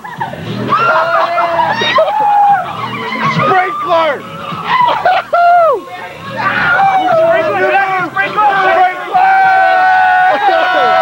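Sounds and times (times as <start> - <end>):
people laughing and whooping: 0.0 - 11.0.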